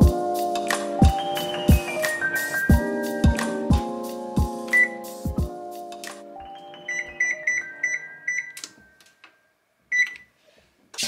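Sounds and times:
oven keypad beeps: 0:04.7 - 0:05.0, 0:06.7 - 0:08.7, 0:09.9 - 0:10.3.

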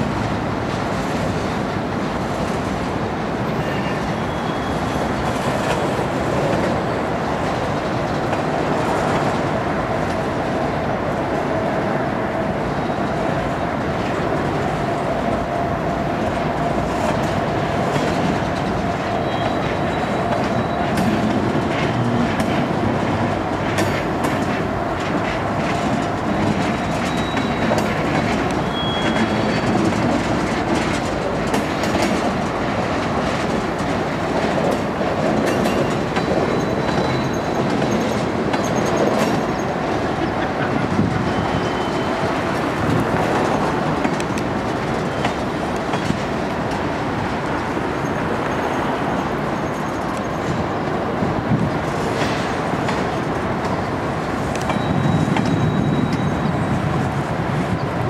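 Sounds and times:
freight train wheels rumbling: 0:00.0 - 0:58.0
high wheel squeals: 0:03.5 - 0:05.5, 0:19.0 - 0:21.2, 0:26.7 - 0:30.0, 0:35.6 - 0:42.6, 0:48.0 - 0:50.6, 0:54.6 - 0:57.0
wheels clacking over rail joints: 0:12.8 - 0:58.0.

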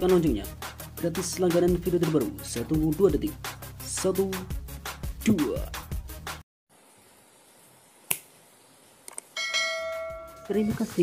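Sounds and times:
notification bell chime: 0:09.4 - 0:11.0.

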